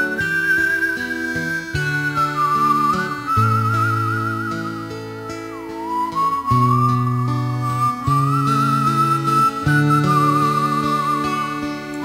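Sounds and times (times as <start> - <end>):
wavering whistle-like melody: 0.0 - 12.0.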